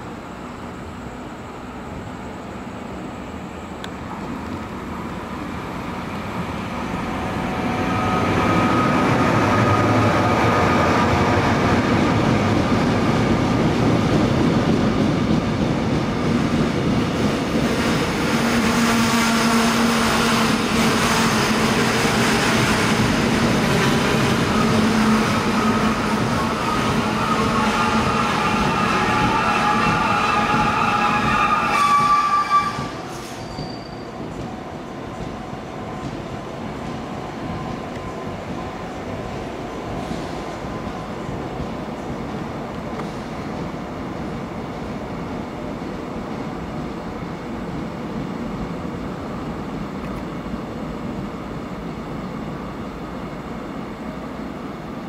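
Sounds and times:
train wheels rumbling on rails: 0.0 - 55.0
high-pitched wheel squeal: 24.4 - 34.3.

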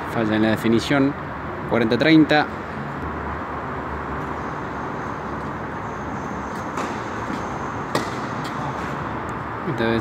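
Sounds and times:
steady background noise: 0.0 - 10.0
racket striking tennis ball: 6.6 - 9.0.

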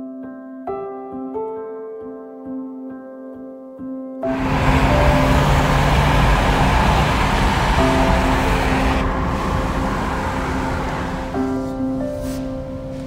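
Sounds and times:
wind buffeting microphone: 4.3 - 12.9
road noise: 4.3 - 13.0.

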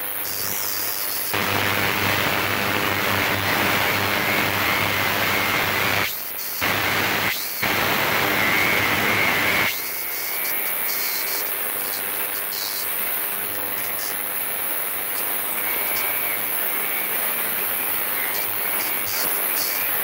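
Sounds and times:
ultrasonic cleaner hissing: 0.3 - 20.0.

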